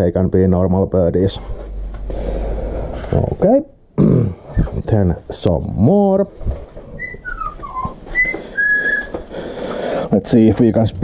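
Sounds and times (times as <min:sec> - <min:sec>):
parrot whistling notes: 0:07.0 - 0:09.2.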